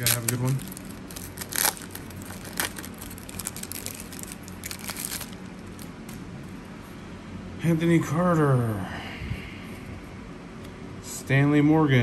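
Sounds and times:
card pack wrapper crinkling and tearing: 0.0s - 6.2s.

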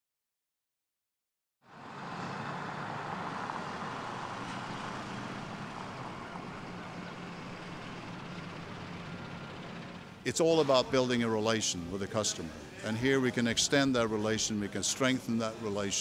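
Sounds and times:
engine and traffic noise: 1.6s - 16.0s.

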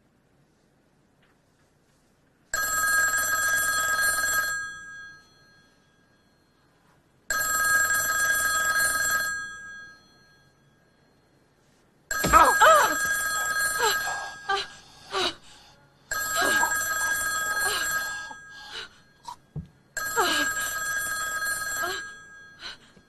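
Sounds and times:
telephone ringing: 2.6s - 6.6s, 7.3s - 11.2s, 12.1s - 14.5s, 16.1s - 19.2s, 19.9s - 22.6s.

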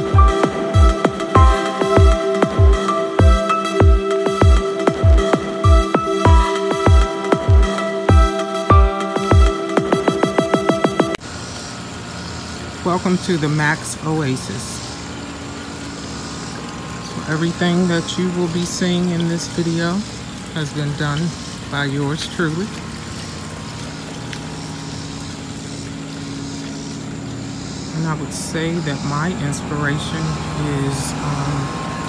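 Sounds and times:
electronic music: 0.0s - 11.2s
motor humming: 0.0s - 32.0s
person speaking: 27.9s - 32.0s.

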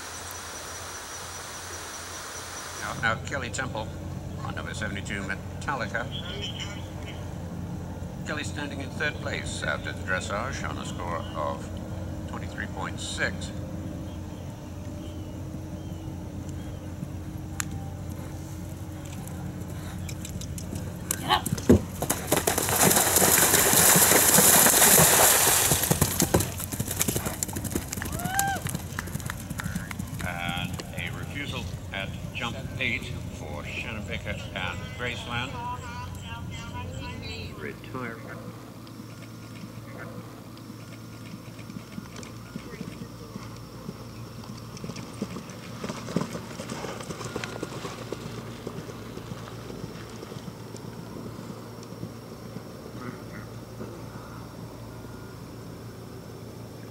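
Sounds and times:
horse galloping on turf: 17.7s - 37.5s, 39.0s - 54.1s
rush of passing horse: 21.1s - 31.8s, 39.2s - 54.1s
horse landing thud: 21.4s - 26.8s.

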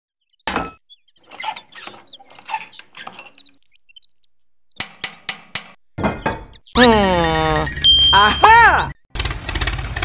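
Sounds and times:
plastic hand pump scraping and rattling: 1.2s - 3.6s
short high squeaks: 1.2s - 3.8s.

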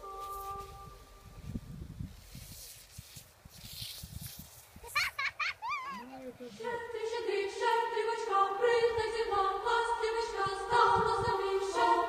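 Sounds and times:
child squealing: 5.0s - 6.1s.

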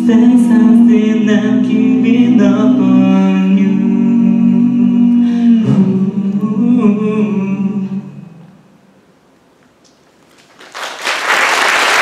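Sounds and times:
a cappella group singing chords: 0.0s - 8.8s.

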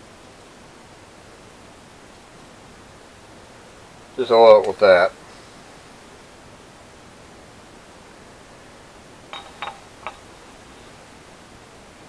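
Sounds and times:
room tone hiss: 0.0s - 12.0s
light metal clinks: 9.3s - 10.4s.

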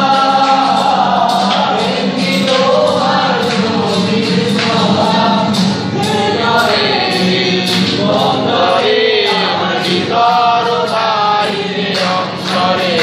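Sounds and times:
group singing in unison: 0.0s - 13.0s
harmonium drone: 0.0s - 13.0s
strummed acoustic guitar: 0.0s - 13.0s.

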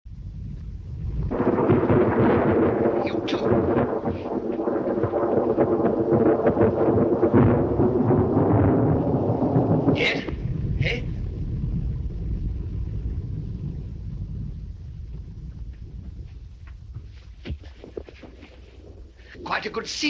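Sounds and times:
electrical buzzing and crackling: 0.1s - 20.0s
thunder rumbling: 0.1s - 20.0s.

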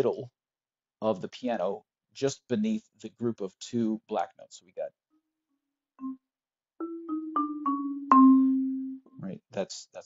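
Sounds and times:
marimba notes: 6.8s - 9.1s.

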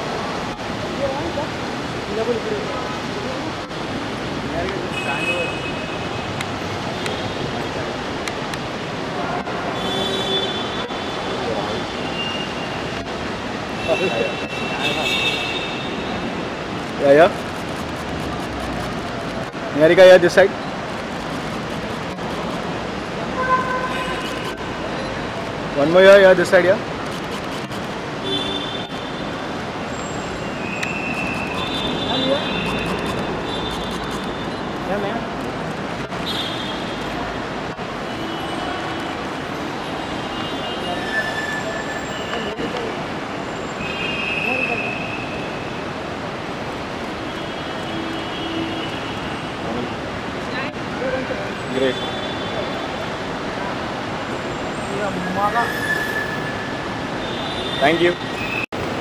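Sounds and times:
crowd noise: 0.0s - 46.1s
traffic noise: 0.0s - 59.0s
vehicle horn: 23.3s - 24.6s, 28.2s - 29.3s
brief high squeaks: 55.6s - 56.8s.

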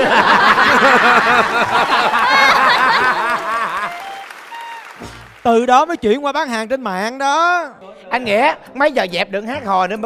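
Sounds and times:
audience laughter: 0.0s - 4.2s
audience applauding: 0.2s - 6.0s.

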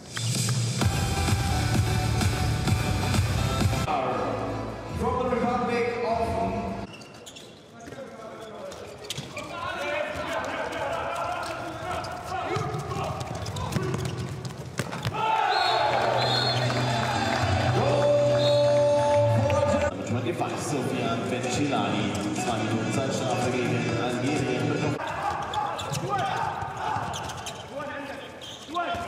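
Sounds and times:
ball bouncing on court floor: 12.5s - 15.2s
players shouting: 15.0s - 19.9s.

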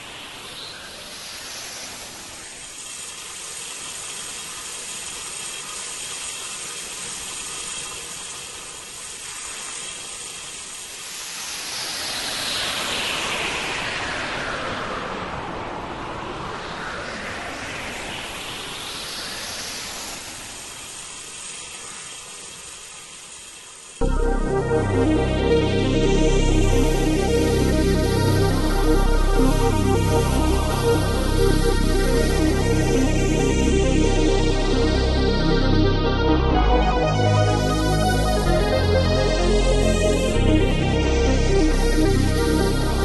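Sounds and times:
synthesizer noise sweep: 24.0s - 43.0s.

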